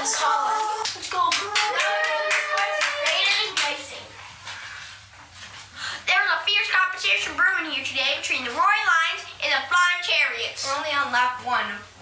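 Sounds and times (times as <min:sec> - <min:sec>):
child speaking: 0:00.0 - 0:01.8, 0:02.4 - 0:04.1, 0:06.1 - 0:11.9.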